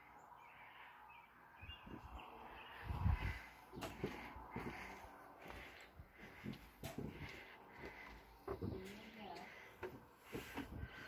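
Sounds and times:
footsteps on wooden deck: 1.7 - 11.0.

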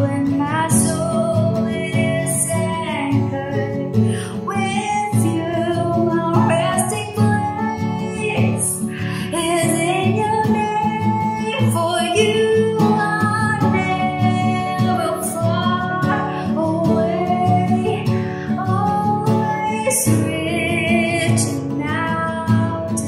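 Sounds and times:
acoustic guitar: 0.0 - 23.0
woman singing worship song: 0.0 - 23.0.

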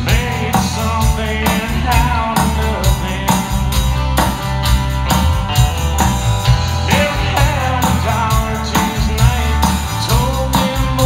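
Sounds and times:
man singing: 0.0 - 3.8, 6.8 - 11.0
country-rock band playing: 0.0 - 11.0.

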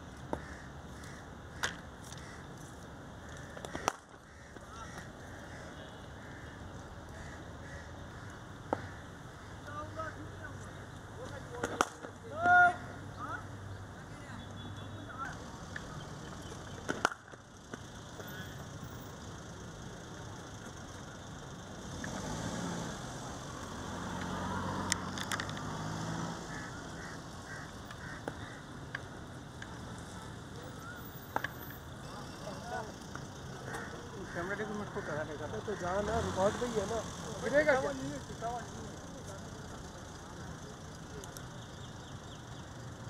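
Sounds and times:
outdoor background noise: 0.0 - 43.0
cricket ball crack: 11.6 - 12.6, 16.8 - 18.8.

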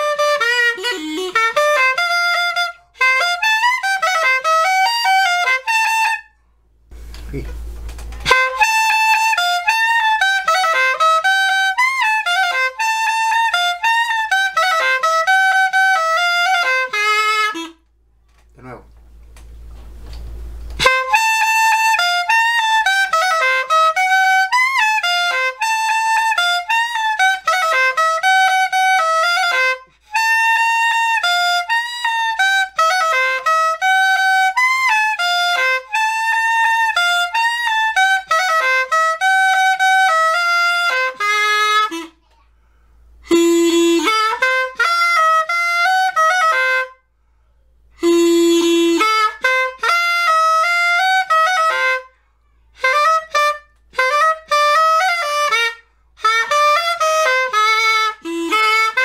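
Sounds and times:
cane flute melody: 0.0 - 6.4, 7.0 - 17.9, 19.9 - 42.2, 43.2 - 47.1, 47.9 - 52.1, 52.7 - 59.0.

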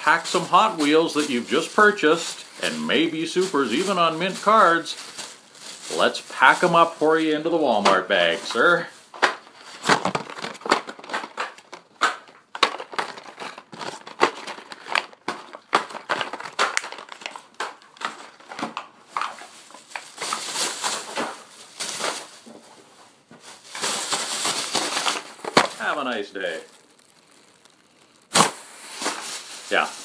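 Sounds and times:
plastic bag crinkling: 0.0 - 30.0
plastic and card clicks: 9.2 - 18.9.

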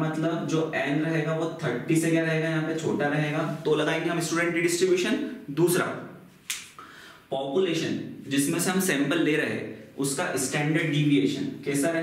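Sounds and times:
man speaking: 0.0 - 6.2, 7.3 - 12.0
sharp click: 6.5 - 6.8.

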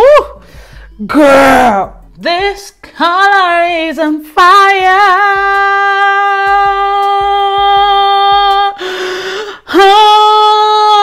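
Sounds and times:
loud breath in: 0.4 - 0.9, 8.8 - 9.7.

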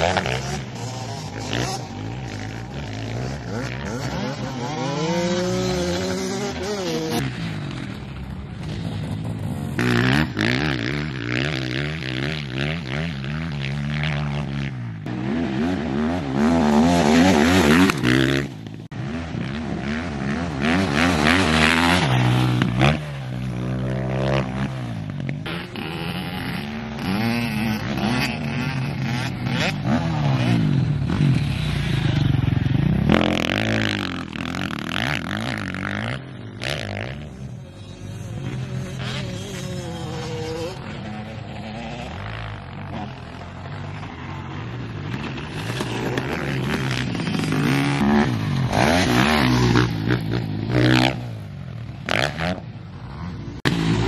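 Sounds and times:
dirt bikes revving: 0.0 - 54.0.

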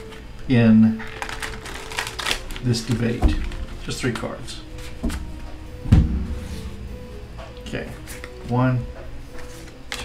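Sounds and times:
soft background music: 0.0 - 10.0
thump: 5.8 - 7.5.

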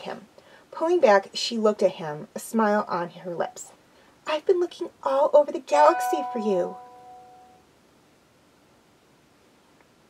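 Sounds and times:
ringing chime: 5.9 - 7.6.

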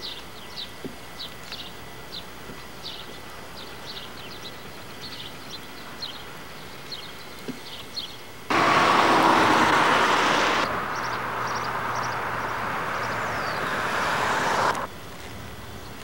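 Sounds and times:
loud rushing noise: 8.5 - 14.9
small birds chirping: 9.3 - 14.9.

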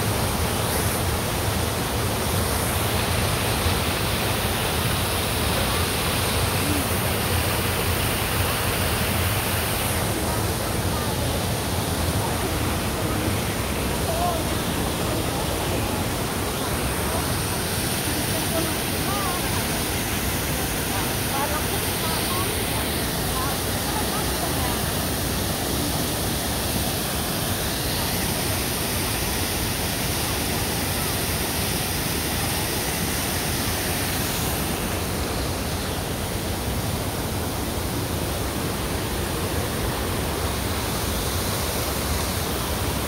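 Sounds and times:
fountain water splashing: 0.0 - 43.0.

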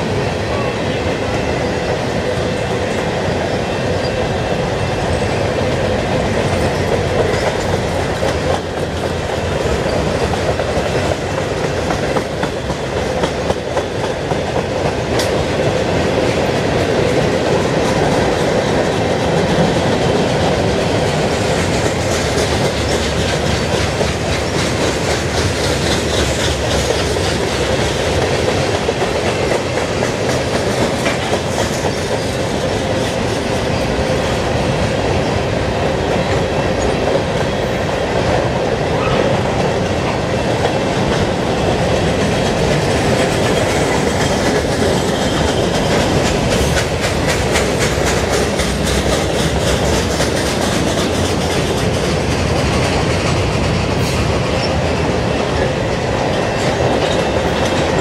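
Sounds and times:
freight train wheels rumbling: 0.0 - 58.0
wheels clicking over rail joints: 2.5 - 58.0.

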